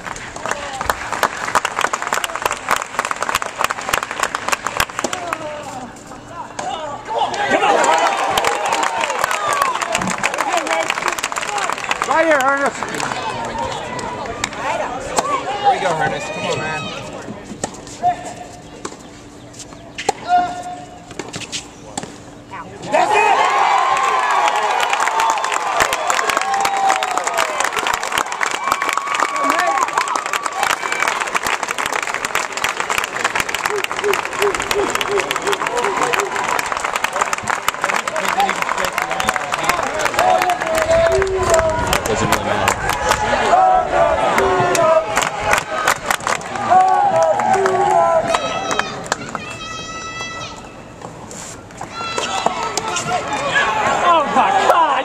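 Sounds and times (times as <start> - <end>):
crowd cheering and clapping: 0.0 - 5.7, 7.1 - 16.0, 23.0 - 50.3.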